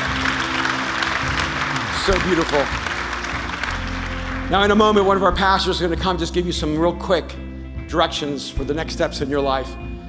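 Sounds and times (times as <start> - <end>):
crowd clapping: 0.0 - 5.6
soft music with sustained chords: 0.0 - 10.0.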